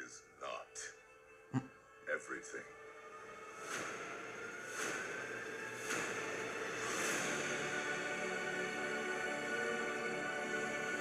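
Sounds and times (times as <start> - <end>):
airy hissing ambient sound design: 3.6 - 11.0.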